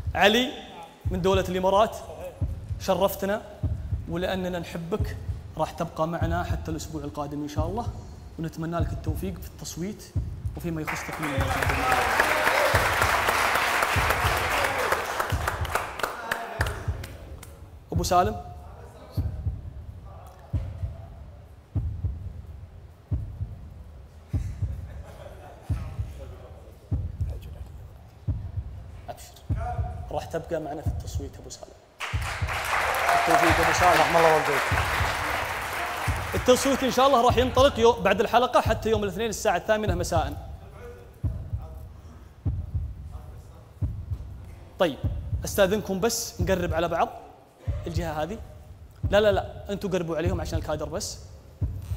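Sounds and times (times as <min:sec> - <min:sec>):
deep heartbeat thumps: 0:00.0 - 0:00.4, 0:01.0 - 0:51.9.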